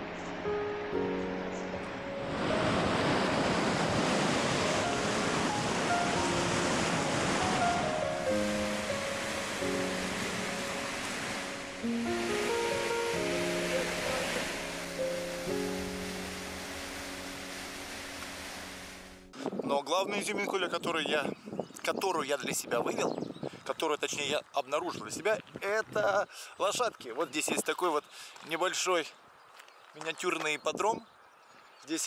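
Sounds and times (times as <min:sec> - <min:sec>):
river rapids rushing: 0:00.0 - 0:19.3
background music with held notes: 0:00.0 - 0:19.4.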